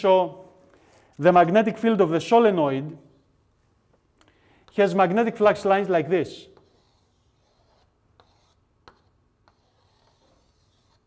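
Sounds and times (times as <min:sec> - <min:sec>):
chalk tapping on blackboard: 0:06.5 - 0:11.0.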